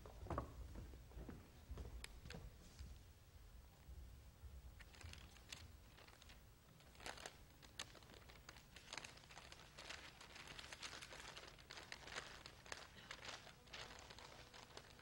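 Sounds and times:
stiff paper crackling: 4.8 - 15.0.

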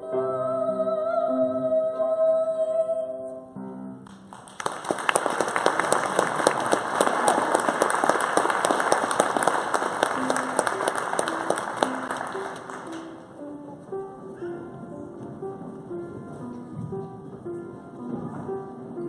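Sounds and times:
soft instrumental music: 0.0 - 4.4, 9.4 - 19.0
audience applauding: 4.1 - 13.4
sustained musical notes: 9.5 - 19.0.

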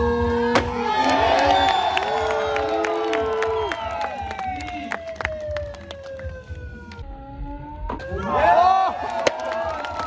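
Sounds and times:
siren-like falling tone: 0.0 - 8.9.

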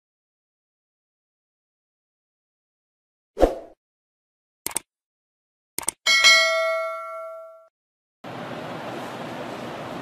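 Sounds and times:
notification bell ding: 6.1 - 7.7.

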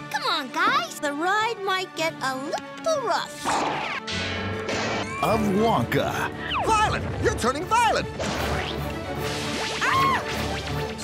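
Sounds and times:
background music: 0.0 - 11.0
cartoon yelp: 9.8 - 10.3.

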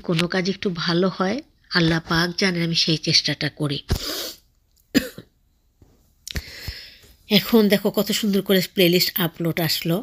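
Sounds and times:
woman clearing throat: 4.9 - 5.4
woman coughing: 4.9 - 5.4.

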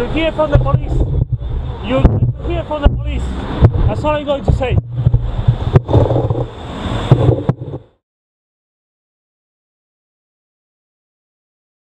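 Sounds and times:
street traffic: 0.0 - 8.0
wind buffeting microphone: 0.0 - 8.0
knocks: 2.0 - 6.5.

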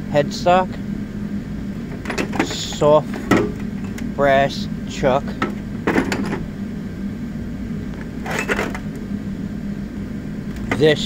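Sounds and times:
steady low hum: 0.0 - 11.0
metal tools clinking in drawer: 1.9 - 4.1, 5.4 - 6.4, 8.2 - 8.9.

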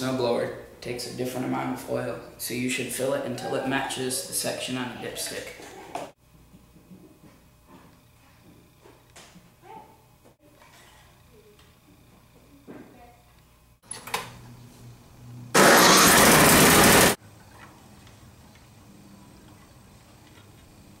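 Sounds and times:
snowblower engine bursting: 15.5 - 17.2.

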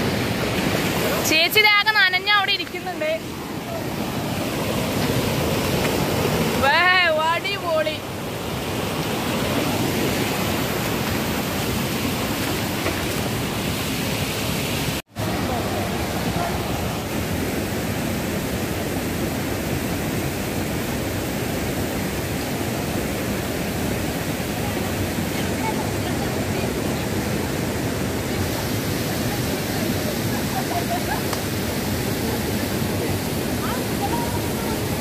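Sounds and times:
water rushing over rocks: 0.0 - 35.0.

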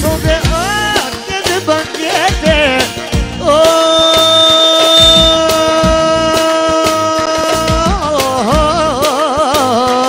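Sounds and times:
band playing dance music: 0.0 - 10.0
drum beat: 0.0 - 10.0.

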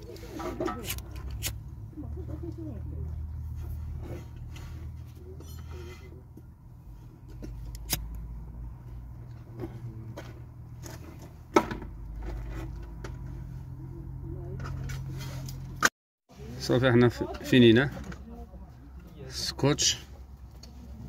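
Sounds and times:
handling wire harness and tape: 0.0 - 1.8.

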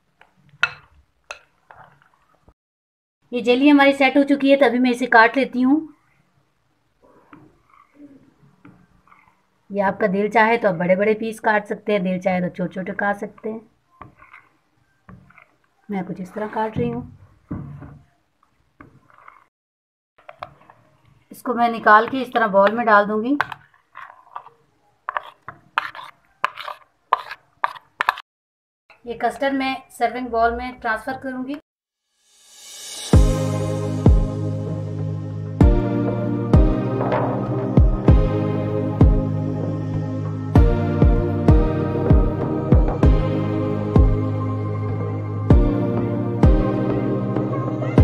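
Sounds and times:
soft stirring: 0.0 - 2.6, 5.9 - 10.4, 12.6 - 19.5, 20.2 - 28.2
spatula clinking on glass bowl: 0.6 - 1.8
metal spoon scraping dish: 7.1 - 9.5, 13.4 - 16.8, 18.8 - 19.5, 21.9 - 28.2.

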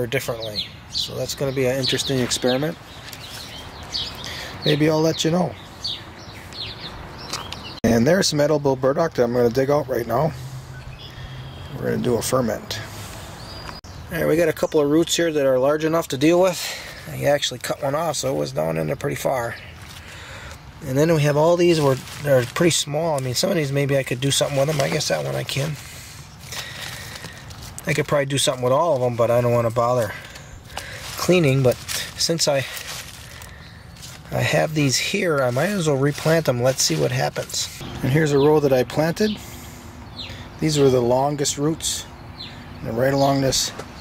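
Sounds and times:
man talking: 0.0 - 2.8, 4.3 - 5.6, 7.8 - 10.5, 11.7 - 13.0, 14.1 - 19.7, 20.8 - 26.0, 27.8 - 30.3, 31.1 - 33.0, 34.2 - 39.5, 40.6 - 42.1, 42.8 - 43.8
faint outdoor background noise: 0.0 - 44.0
small birds chirping: 0.0 - 44.0
soft rustling: 21.6 - 23.4, 30.0 - 37.8.

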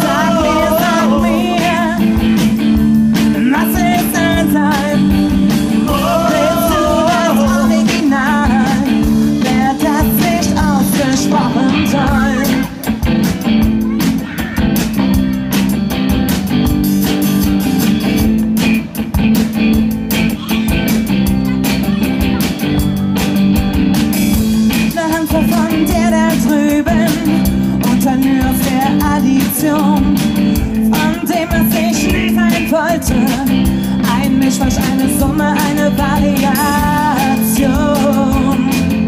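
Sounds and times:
woman singing: 0.0 - 2.4, 3.4 - 12.8, 24.9 - 39.0
bass guitar: 0.0 - 39.0
drum kit beat: 0.0 - 39.0
electric guitar: 0.0 - 39.0.

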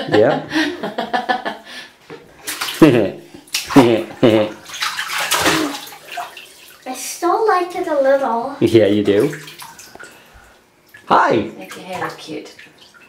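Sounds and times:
laughter: 0.0 - 1.7
bath water splashing: 2.3 - 13.0.

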